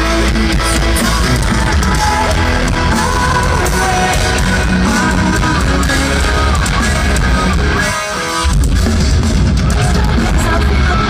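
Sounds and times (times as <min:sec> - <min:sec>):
person singing: 0:00.0 - 0:08.8, 0:09.5 - 0:11.0
metalcore band playing live: 0:00.0 - 0:11.0.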